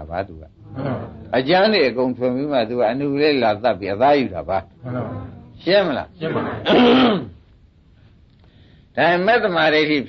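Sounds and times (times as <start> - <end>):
man clearing his throat: 6.6 - 7.4.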